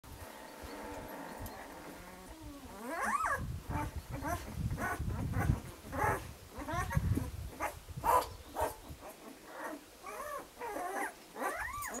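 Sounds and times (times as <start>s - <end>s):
puppy squealing and whimpering: 0.6s - 12.0s.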